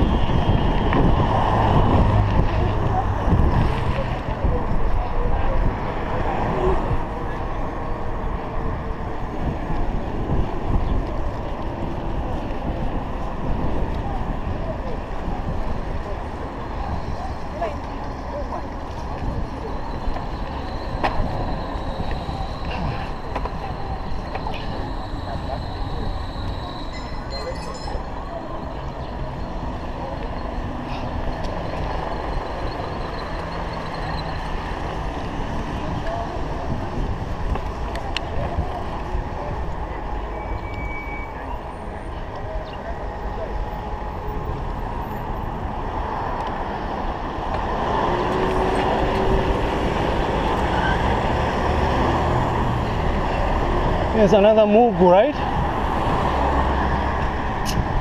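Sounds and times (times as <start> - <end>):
wind on microphone: 0.0 - 40.2, 55.4 - 58.0
bicycle tyres on road: 0.0 - 58.0
motor traffic passing: 41.4 - 58.0.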